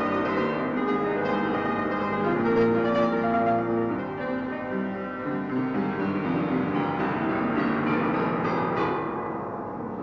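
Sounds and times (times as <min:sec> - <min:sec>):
solo piano playing: 0:00.0 - 0:10.0.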